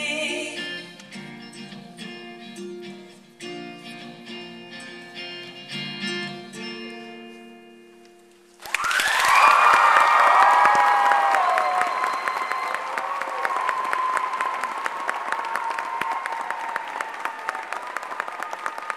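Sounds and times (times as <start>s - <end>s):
audience applause: 8.6s - 18.9s
whoops and cheers: 8.6s - 18.9s.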